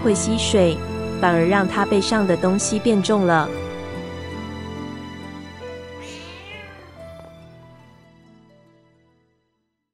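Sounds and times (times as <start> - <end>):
soft background music: 0.0 - 9.7
cat meowing: 6.0 - 7.4.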